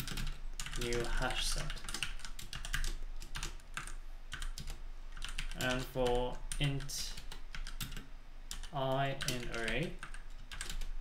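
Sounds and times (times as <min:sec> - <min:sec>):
typing on computer keyboard: 0:00.0 - 0:10.9.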